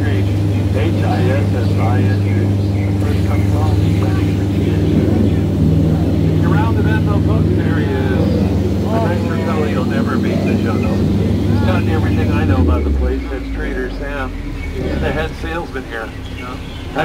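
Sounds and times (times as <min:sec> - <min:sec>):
boat motor droning: 0:00.0 - 0:17.0
faint voices: 0:00.0 - 0:17.0
propeller churning water: 0:00.0 - 0:17.0.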